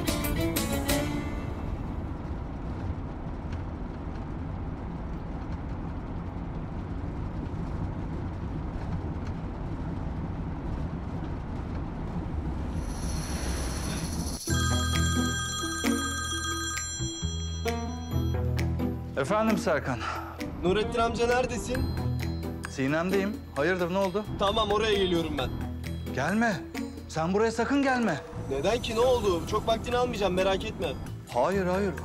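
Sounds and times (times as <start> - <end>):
car cabin road and engine noise: 0.0 - 14.5
mobile phone ringtone: 13.7 - 18.4.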